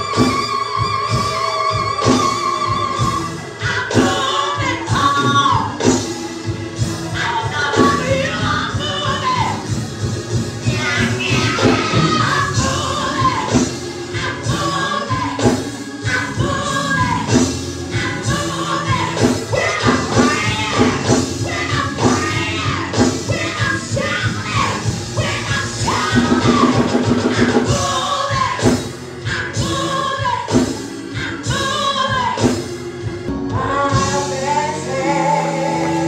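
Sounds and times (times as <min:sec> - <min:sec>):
woman singing gospel: 0:00.0 - 0:06.0, 0:06.9 - 0:09.8, 0:10.6 - 0:32.7, 0:33.3 - 0:36.0.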